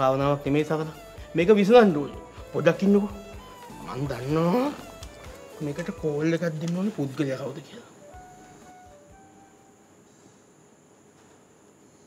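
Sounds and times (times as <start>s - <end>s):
soft background music: 0.0s - 10.4s.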